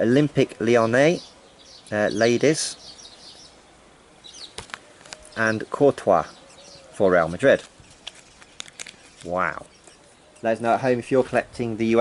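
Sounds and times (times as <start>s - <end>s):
bird chirping: 0.0s - 12.0s
faint breeze hiss: 0.0s - 12.0s
sticker cards flipping clicks: 7.6s - 9.3s.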